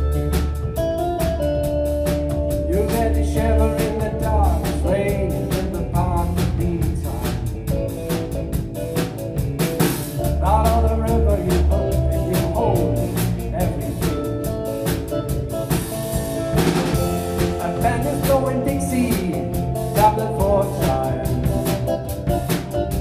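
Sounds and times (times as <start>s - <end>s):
drum kit beat on cymbals: 0.0s - 23.0s
keyboard chords: 0.0s - 23.0s.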